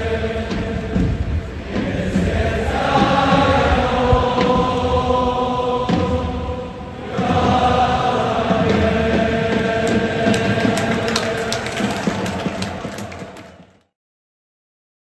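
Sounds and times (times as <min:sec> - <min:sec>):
crowd singing a chant: 0:00.0 - 0:13.7.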